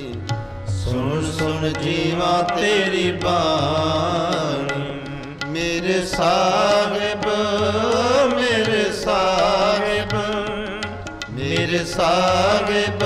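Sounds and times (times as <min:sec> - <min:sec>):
harmonium: 0:00.0 - 0:13.0
men singing devotional song: 0:00.0 - 0:13.0
tabla: 0:00.0 - 0:13.0.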